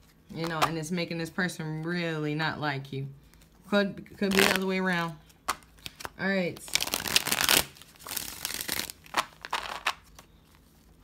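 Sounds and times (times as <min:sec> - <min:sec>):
cards being shuffled: 0:04.2 - 0:11.0.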